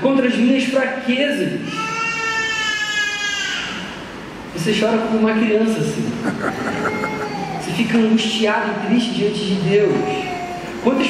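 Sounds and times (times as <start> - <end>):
high-pitched crying wail: 6.5 - 7.6.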